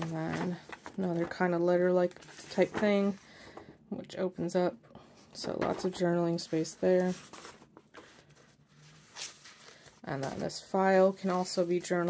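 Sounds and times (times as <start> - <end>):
paper rustling: 0.0 - 3.2, 5.7 - 12.0.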